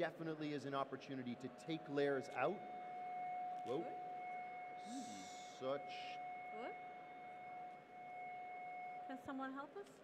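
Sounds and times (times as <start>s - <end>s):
two-pitch electronic whine: 0.0s - 9.7s.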